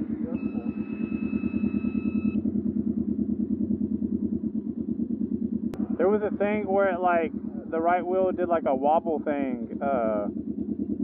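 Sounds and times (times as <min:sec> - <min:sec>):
steady electronic tone: 0:00.0 - 0:02.9
engine idling with low pulsing: 0:00.0 - 0:11.0.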